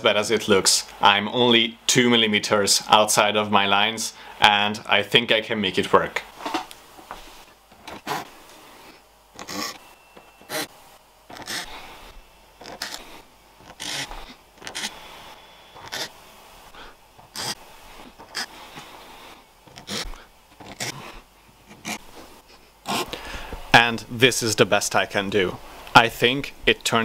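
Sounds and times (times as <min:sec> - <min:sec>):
hand file scraping comb teeth: 0:09.4 - 0:09.8, 0:10.4 - 0:10.7, 0:11.3 - 0:12.0, 0:12.6 - 0:15.0, 0:15.8 - 0:16.1, 0:17.3 - 0:18.9, 0:19.7 - 0:22.0.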